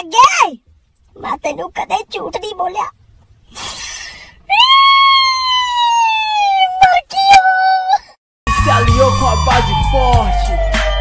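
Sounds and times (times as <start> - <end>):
comic crying wail: 4.5 - 6.8.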